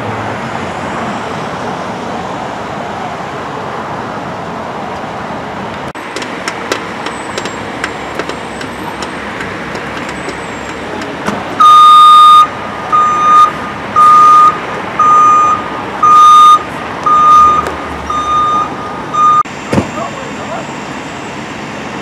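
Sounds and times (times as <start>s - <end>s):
steady vehicle noise: 0.0s - 22.0s
truck backup alarm beeping: 11.6s - 21.3s.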